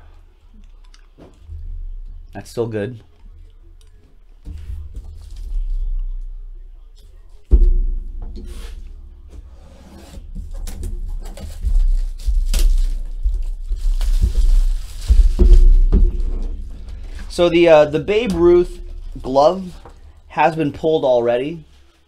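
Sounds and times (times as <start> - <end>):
box knocks while handled: 10.6 - 17.3
plastic shrink-wrap tearing: 11.2 - 16.6.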